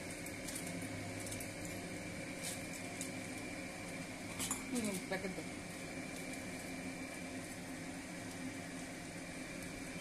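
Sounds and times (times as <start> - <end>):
faint steady hum: 0.0 - 10.0
pot simmering with bubbling hiss: 0.0 - 10.0.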